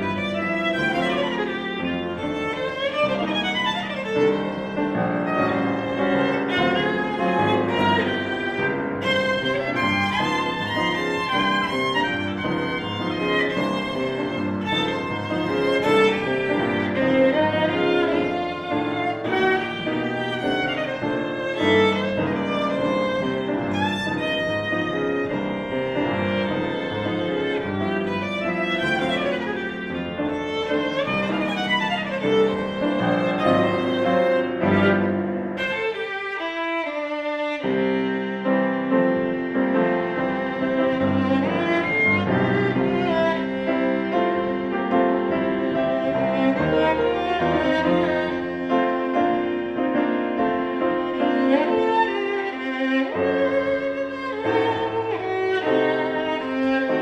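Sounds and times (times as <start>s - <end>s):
piano accompaniment: 0.0s - 57.0s
violin melody: 0.0s - 57.0s.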